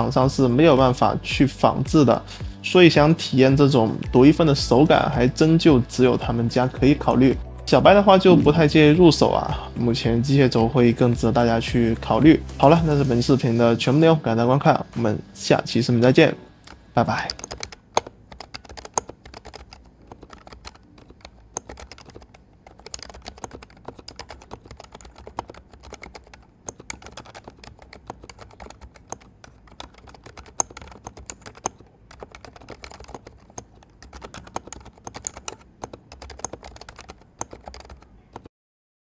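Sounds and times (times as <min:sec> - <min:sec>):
keyboard typing: 0:16.6 - 0:38.5.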